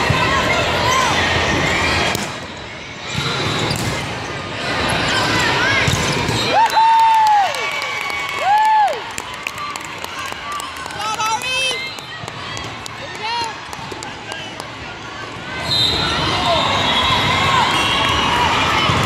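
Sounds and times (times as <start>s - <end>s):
babble of spectators: 0.0s - 6.6s, 7.8s - 19.0s.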